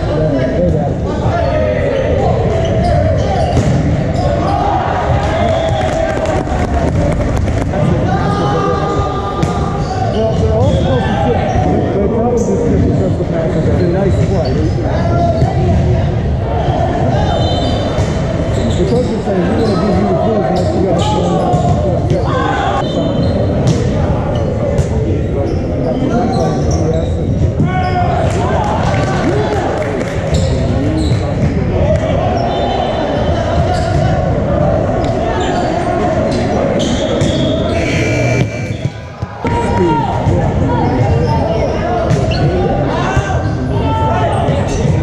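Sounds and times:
people talking and calling out: 0.0 - 45.0
voices echoing in a gym: 0.0 - 45.0
high squeak: 36.8 - 39.0.

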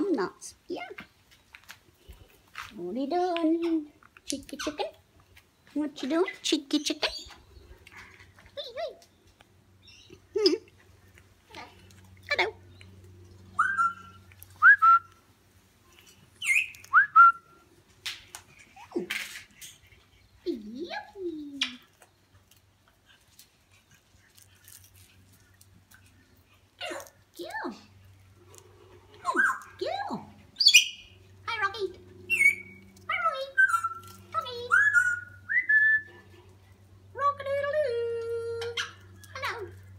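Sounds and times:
parrot whistling: 13.6 - 15.1, 32.3 - 32.8, 34.7 - 36.1.

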